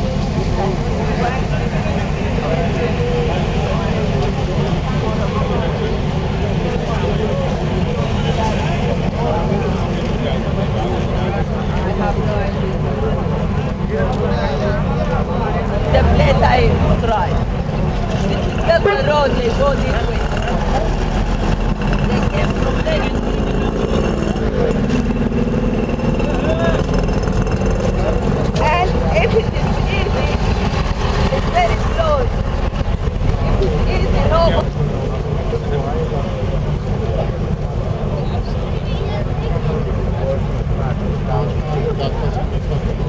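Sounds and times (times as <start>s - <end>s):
traffic engine rumble: 0.0s - 43.0s.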